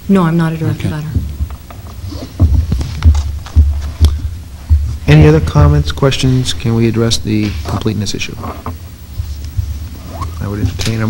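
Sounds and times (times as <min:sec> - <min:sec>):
microphone handling thumps: 0:01.0 - 0:11.0.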